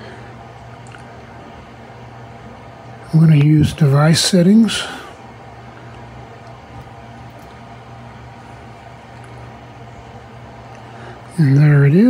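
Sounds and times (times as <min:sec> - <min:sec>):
low mechanical room hum: 0:00.0 - 0:12.0.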